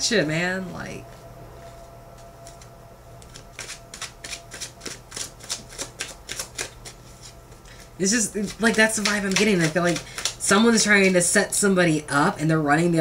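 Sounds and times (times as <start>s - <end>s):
cards being shuffled: 2.2s - 11.2s.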